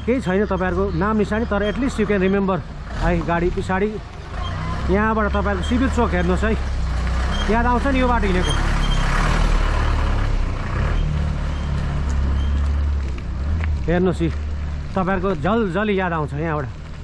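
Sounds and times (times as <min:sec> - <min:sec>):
bus engine drone: 0:00.0 - 0:17.0
tyres rushing on dirt road: 0:00.0 - 0:17.0.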